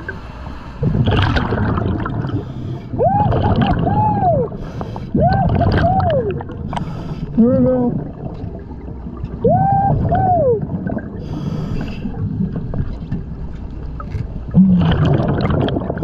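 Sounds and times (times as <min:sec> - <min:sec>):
bubbling and rumbling: 0:00.0 - 0:16.0
diver breathing through regulator: 0:06.7 - 0:07.4, 0:11.2 - 0:12.2.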